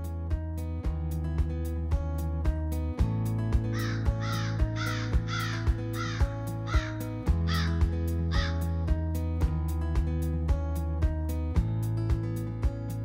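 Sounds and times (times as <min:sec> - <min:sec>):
background music with steady beat: 0:00.0 - 0:13.0
crow cawing: 0:03.7 - 0:08.7.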